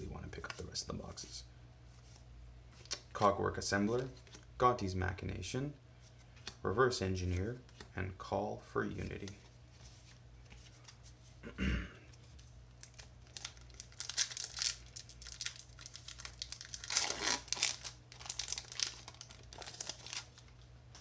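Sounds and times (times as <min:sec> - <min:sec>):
person clearing throat: 0:11.4 - 0:12.1
foil wrapper tearing and crinkling: 0:12.8 - 0:20.5.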